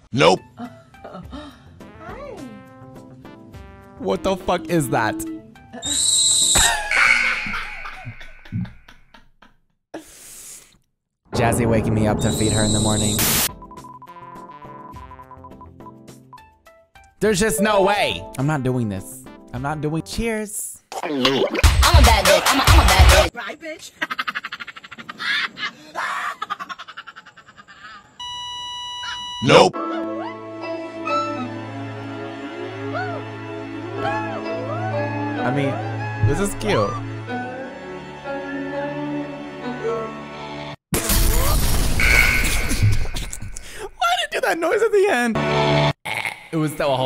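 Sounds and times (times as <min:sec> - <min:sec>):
background music: 0:00.0 - 0:08.6, 0:11.3 - 0:23.3, 0:29.4 - 0:40.8
gibbon calling: 0:05.1 - 0:08.7
man chuckling: 0:07.6 - 0:09.6, 0:24.0 - 0:28.2.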